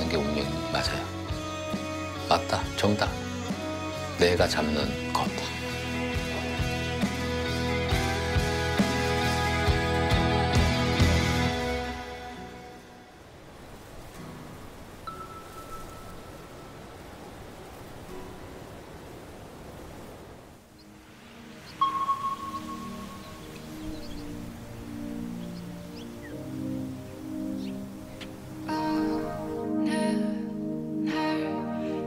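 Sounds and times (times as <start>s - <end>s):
soft airy background music: 0.0s - 13.4s, 14.1s - 32.0s
bell-like note ringing: 15.1s - 16.4s, 21.8s - 23.4s.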